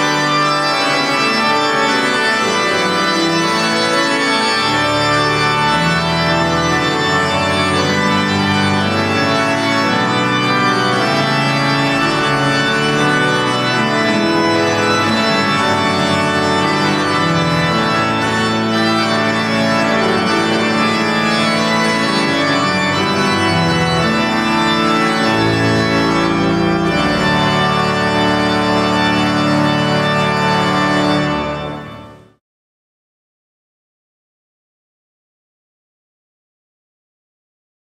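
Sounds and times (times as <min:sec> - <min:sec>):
pipe organ chords: 0:00.0 - 0:32.4.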